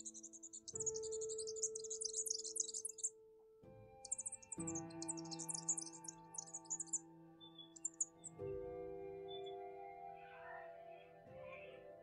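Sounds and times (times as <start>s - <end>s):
small birds twittering: 0.0s - 3.2s, 4.0s - 11.7s
soft ambient music chords: 0.0s - 12.0s.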